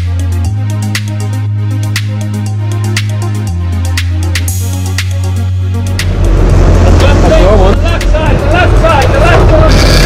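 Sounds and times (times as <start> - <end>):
boat engine rumbling: 5.7 - 10.0.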